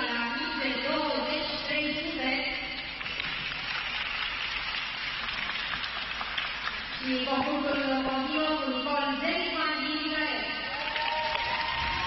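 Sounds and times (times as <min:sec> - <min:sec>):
audience applauding: 0:03.0 - 0:07.0, 0:10.7 - 0:12.0.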